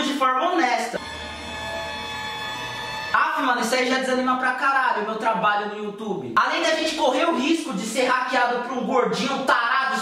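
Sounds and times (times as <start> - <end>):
sustained musical chord: 1.0 - 3.6.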